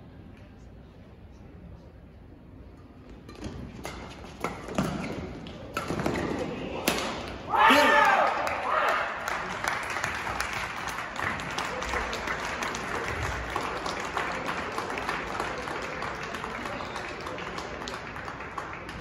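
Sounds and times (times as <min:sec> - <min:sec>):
racket striking shuttlecock: 0:03.3 - 0:07.4
player shouting: 0:07.5 - 0:09.1
crowd clapping and cheering: 0:07.5 - 0:19.0.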